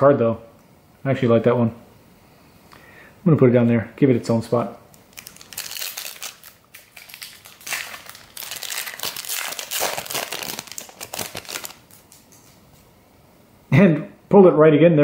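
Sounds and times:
wrapper crinkling: 5.0 - 12.7.

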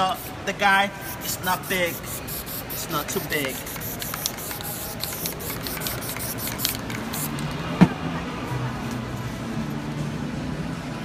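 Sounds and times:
spray-paint can spraying: 0.0 - 7.5.

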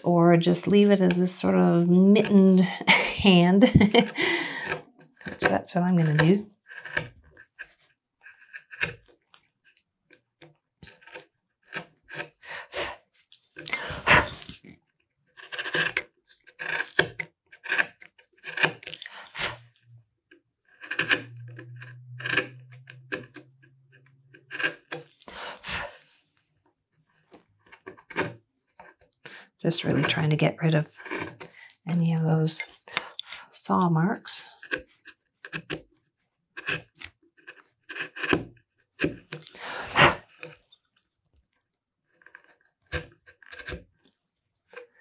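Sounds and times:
carving gouge scraping wood: 0.4 - 14.6, 15.3 - 19.8, 20.6 - 26.1, 27.1 - 33.2, 34.4 - 35.9, 36.5 - 40.8, 42.1 - 44.0
low steady hum: 21.0 - 24.5.

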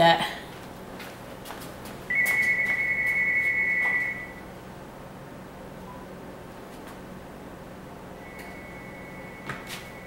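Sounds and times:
high electronic beep: 2.1 - 4.4, 8.2 - 10.0.

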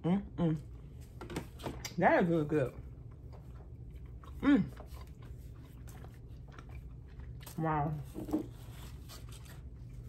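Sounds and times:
low steady hum: 0.0 - 10.0
person chewing food: 2.8 - 10.0.

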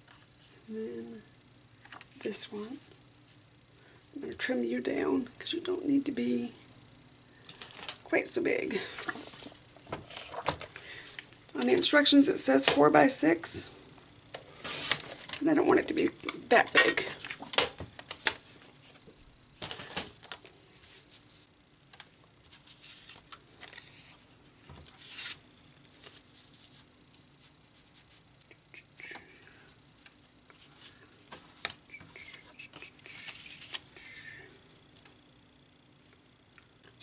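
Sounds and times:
paper rustling: 9.0 - 11.4, 14.6 - 15.4, 22.4 - 28.3.

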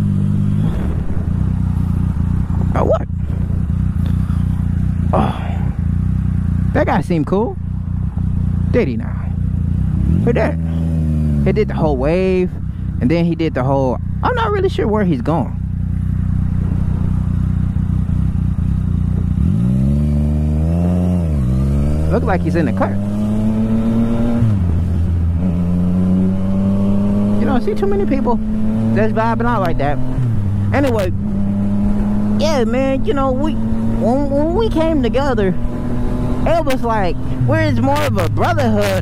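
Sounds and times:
motorcycle engine idling: 0.0 - 25.4.

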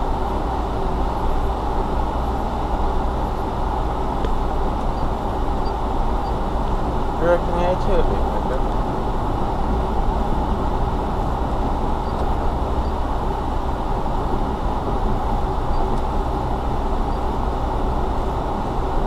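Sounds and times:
car engine rumble: 0.0 - 19.0.

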